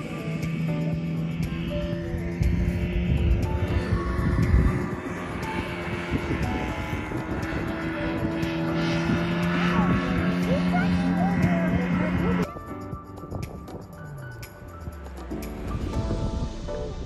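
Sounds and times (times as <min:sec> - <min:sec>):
motorboat engine droning: 0:00.0 - 0:17.0.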